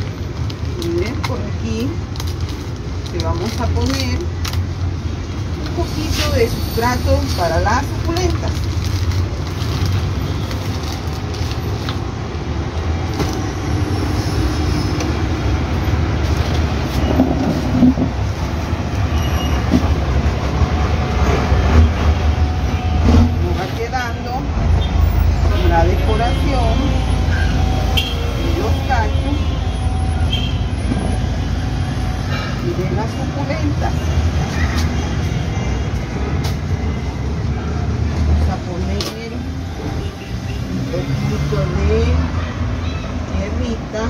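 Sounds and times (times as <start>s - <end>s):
street traffic rumble: 0.0s - 44.0s.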